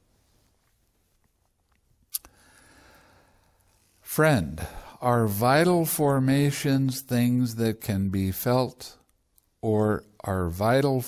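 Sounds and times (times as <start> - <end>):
soft rustling: 0.0 - 2.1.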